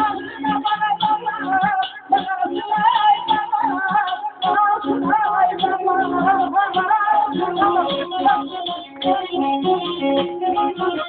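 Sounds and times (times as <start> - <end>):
amplified instrumental accompaniment: 0.0 - 11.0
man singing into microphone: 0.0 - 11.0.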